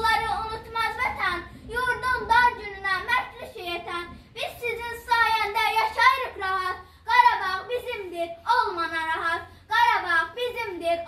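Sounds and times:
girl chanting a poem: 0.0s - 11.0s.

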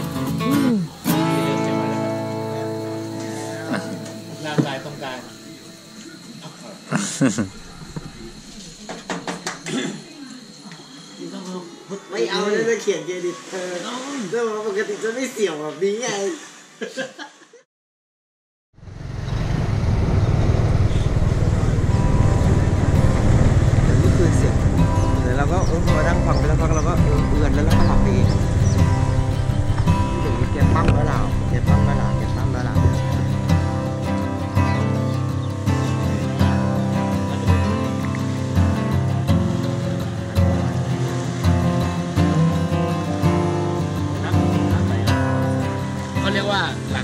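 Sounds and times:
faint music: 0.0s - 16.0s, 21.5s - 47.0s
small motorbike engine running: 18.8s - 31.1s
wind rumble on microphone: 19.0s - 33.5s
person speaking: 30.0s - 33.4s.

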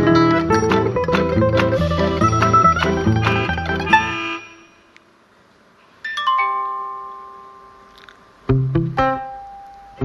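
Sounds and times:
plucked-string music: 0.0s - 4.8s, 7.0s - 10.0s.

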